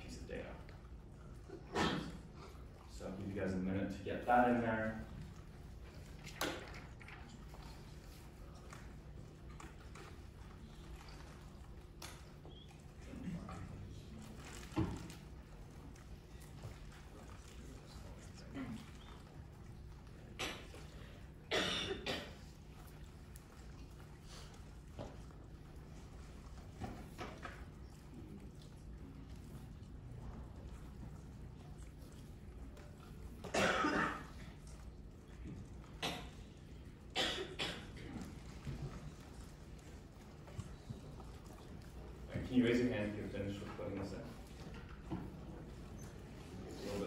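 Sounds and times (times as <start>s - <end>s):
low room hum: 0.0s - 47.0s
person coughing: 1.5s - 2.3s, 21.5s - 22.4s, 33.4s - 34.4s, 36.0s - 36.3s, 37.2s - 38.1s.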